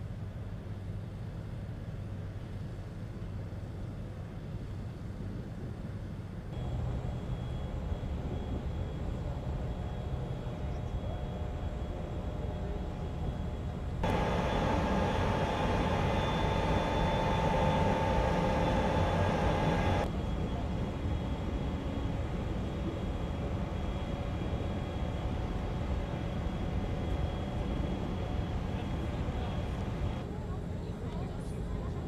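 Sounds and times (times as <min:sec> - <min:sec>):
low rumble of ship machinery: 0:00.0 - 0:32.0
steady many-toned hum: 0:00.0 - 0:32.0.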